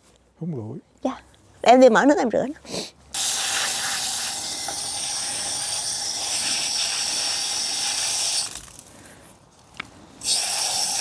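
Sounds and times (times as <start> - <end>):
water spraying from hose nozzle: 3.1 - 8.8, 10.2 - 11.0.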